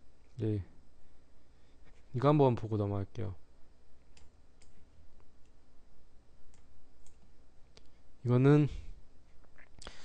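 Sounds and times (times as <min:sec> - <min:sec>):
low steady hum: 0:00.0 - 0:10.0
computer mouse clicks: 0:04.1 - 0:04.8.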